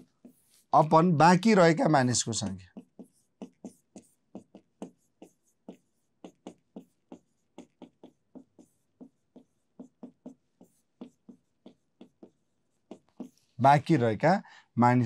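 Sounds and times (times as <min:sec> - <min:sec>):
marker pen writing on a board: 0:00.0 - 0:14.3.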